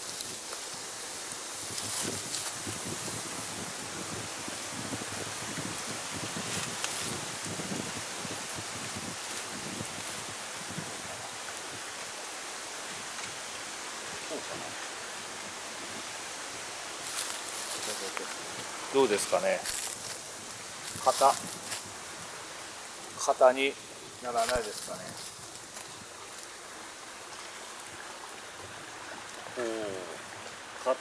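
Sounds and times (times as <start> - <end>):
branch rustling: 0.0 - 30.7
steady outdoor hiss: 0.0 - 31.0.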